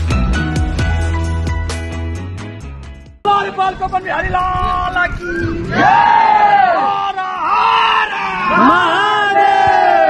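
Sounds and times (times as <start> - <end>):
crowd shouting a devotional cry: 5.7 - 10.0.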